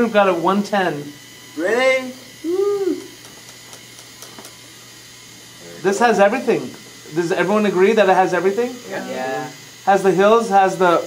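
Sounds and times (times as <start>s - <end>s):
small motor humming: 0.0s - 11.0s.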